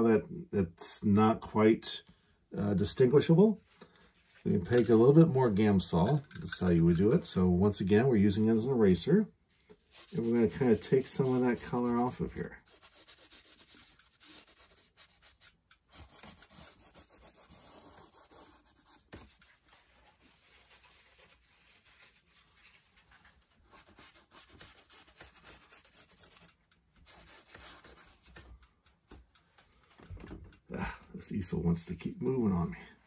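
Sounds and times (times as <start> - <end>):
paper towel scrubbing canvas: 9.8 - 28.5.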